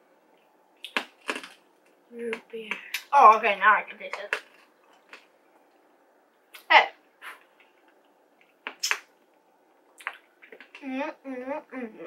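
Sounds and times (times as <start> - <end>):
candy crunching between teeth: 0.8 - 1.6.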